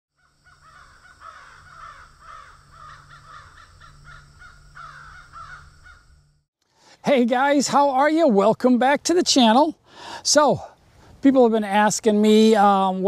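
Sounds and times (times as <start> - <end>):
crows cawing: 0.2 - 6.2.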